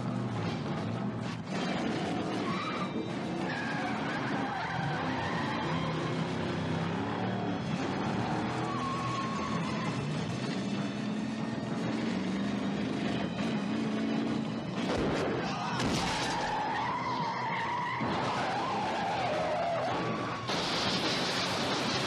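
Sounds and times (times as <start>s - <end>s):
car engine running at speed: 0.0s - 22.0s
tyres skidding screech: 0.0s - 22.0s
car crash: 14.8s - 17.0s, 17.6s - 22.0s.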